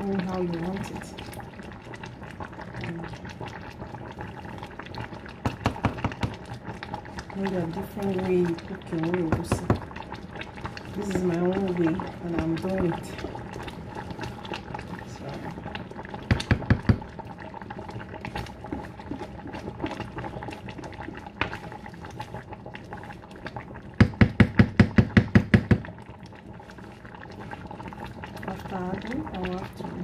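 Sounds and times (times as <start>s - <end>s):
soup bubbling and popping: 0.0s - 30.0s.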